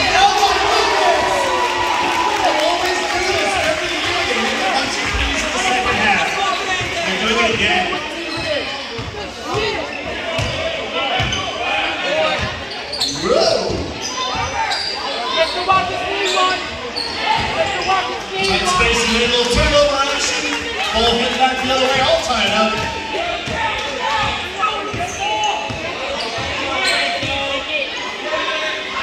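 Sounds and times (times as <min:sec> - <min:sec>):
spectators chattering: 0:00.0 - 0:29.0.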